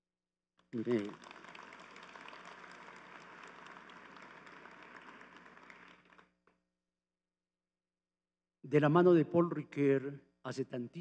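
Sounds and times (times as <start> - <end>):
faint audience applause: 0.6 - 6.5.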